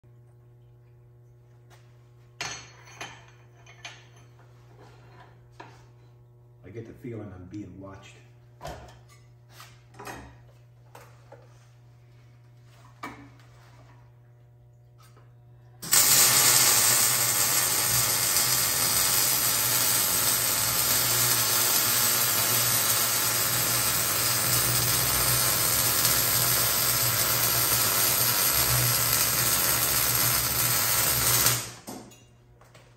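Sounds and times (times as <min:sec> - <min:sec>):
low electrical hum: 0:00.0 - 0:32.9
steady low hum: 0:00.1 - 0:16.0
welding arc sizzling: 0:15.8 - 0:31.9.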